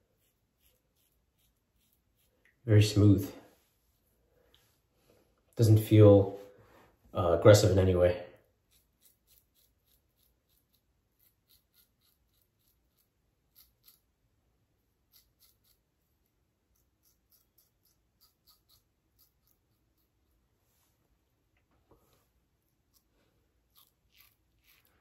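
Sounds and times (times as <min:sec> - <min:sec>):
razor scraping stubble: 0:00.1 - 0:02.6, 0:08.5 - 0:14.2, 0:15.0 - 0:20.4, 0:22.7 - 0:25.0.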